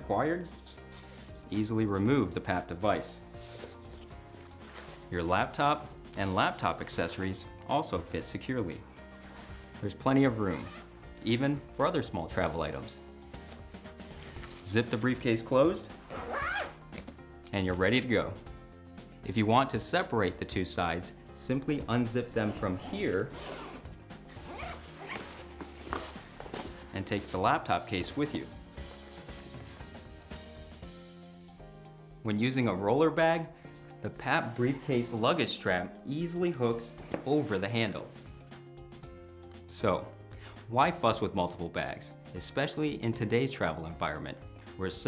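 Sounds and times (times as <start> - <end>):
faint background music: 0.0 - 45.0
fabric briefcase rustling: 3.3 - 5.9, 12.3 - 17.2, 22.0 - 30.2, 36.9 - 37.7
zipper unzipping: 10.5 - 10.9, 16.0 - 16.8, 22.4 - 26.8.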